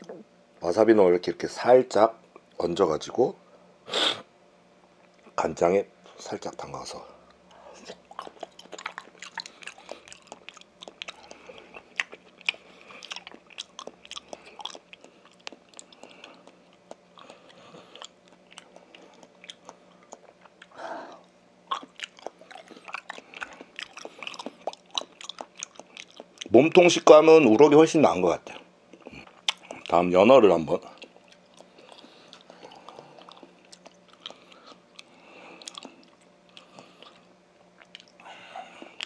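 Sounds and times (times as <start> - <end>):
chewing raw fish: 7.5 - 27.0, 28.4 - 30.0, 30.7 - 39.0.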